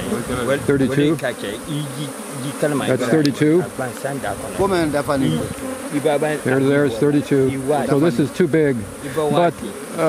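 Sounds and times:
colony of bees humming: 0.0 - 10.0
single bees buzzing past: 0.0 - 10.0.

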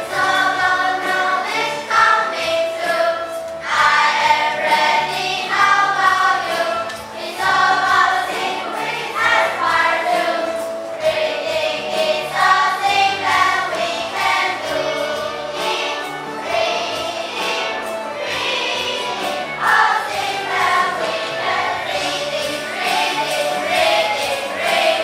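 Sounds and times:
children singing together: 0.0 - 25.0.

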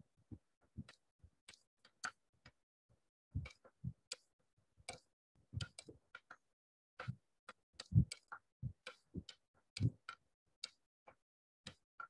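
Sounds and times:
faint irregular clicks: 0.3 - 12.0.

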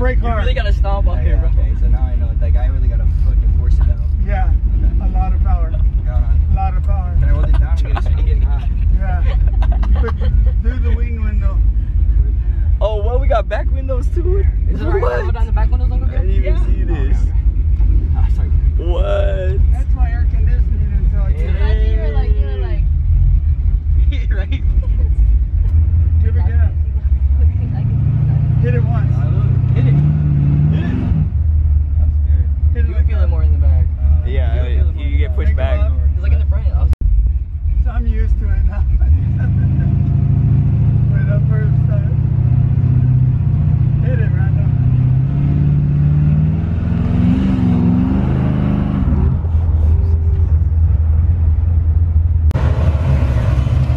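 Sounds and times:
voices: 0.0 - 31.2, 32.0 - 37.0, 37.6 - 45.7
car engine rumble: 0.0 - 53.9
road noise: 0.0 - 53.9.

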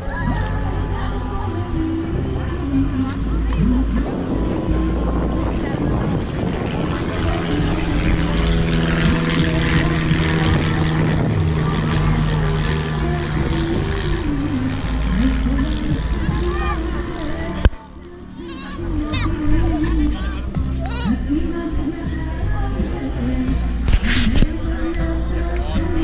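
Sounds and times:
propeller aircraft engine drone: 0.0 - 17.7
wind rumbling on microphone: 0.0 - 17.8, 18.9 - 26.0.

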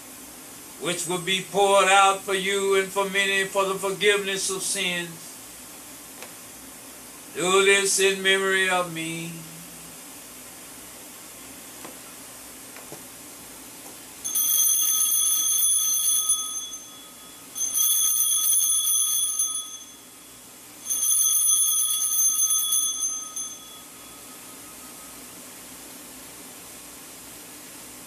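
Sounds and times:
small altar bells ringing: 14.2 - 25.4.

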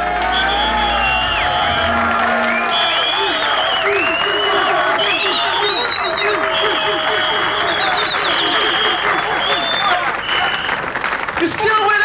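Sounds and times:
band music: 0.0 - 5.4
high whistles: 0.0 - 10.8
audience applauding: 0.0 - 12.0.

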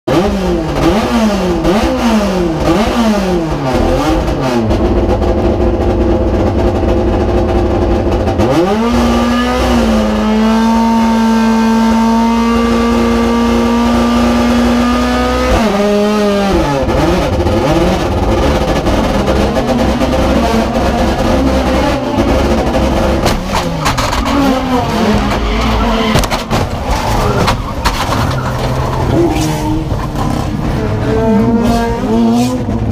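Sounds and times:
race car engine revving: 0.1 - 32.9
car crash knocks: 23.1 - 29.1.

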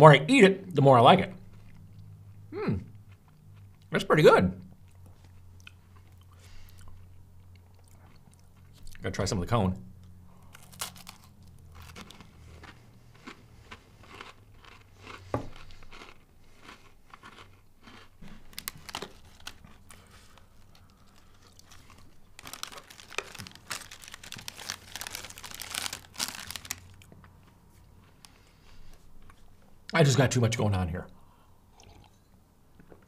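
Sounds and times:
ice cream cone crunching: 10.4 - 28.3
plastic wrapper crinkling: 10.5 - 12.3, 18.4 - 27.1.

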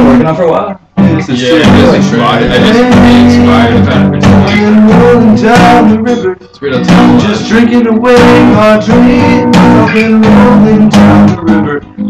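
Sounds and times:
man singing: 0.0 - 0.3, 1.0 - 12.0
guitar playing: 0.0 - 12.0.

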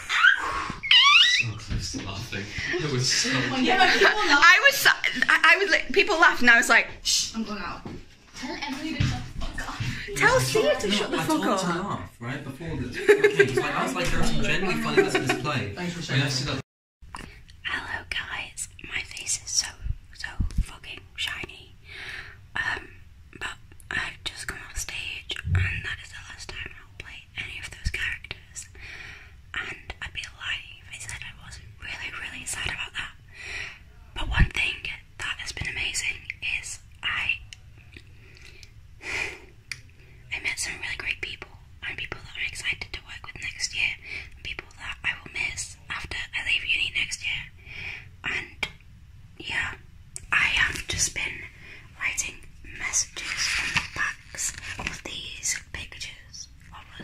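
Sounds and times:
woman whispering: 9.0 - 11.5, 17.6 - 21.8, 22.5 - 28.7, 29.5 - 33.2, 34.2 - 37.6, 40.3 - 47.6, 48.2 - 48.7, 49.4 - 57.0.

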